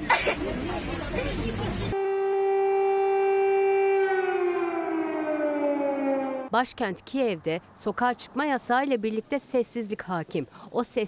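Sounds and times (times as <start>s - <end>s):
air-raid siren: 2.0s - 6.5s.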